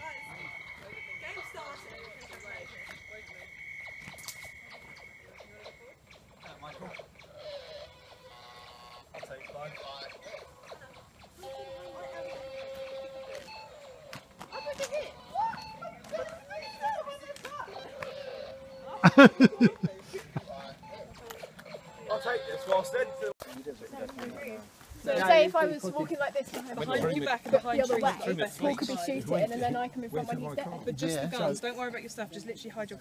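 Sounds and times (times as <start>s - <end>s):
long steady high tone: 0.0s - 6.0s
faint voices talking: 0.0s - 33.0s.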